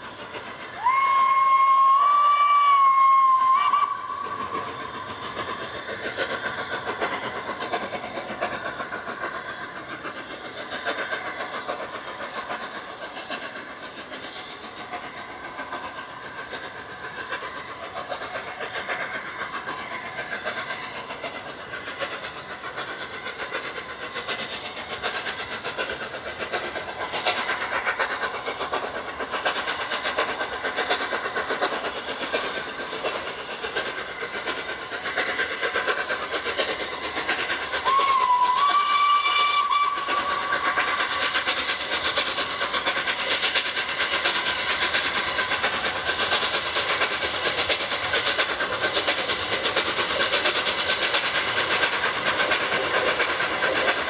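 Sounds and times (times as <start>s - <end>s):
steam locomotive exhaust beats: 0.0s - 54.0s
steam whistle: 0.8s - 4.2s, 37.8s - 40.6s.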